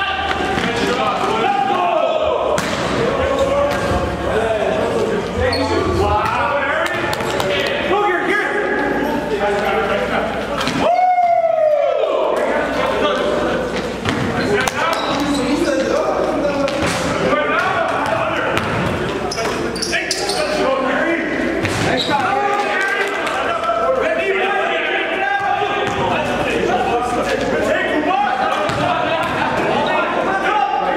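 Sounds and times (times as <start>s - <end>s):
players' voices echoing: 0.0s - 30.9s
sneaker squeaks: 5.4s - 6.5s, 13.8s - 15.8s, 18.6s - 20.7s, 21.6s - 22.4s
basketball bouncing on gym floor: 17.6s - 19.1s.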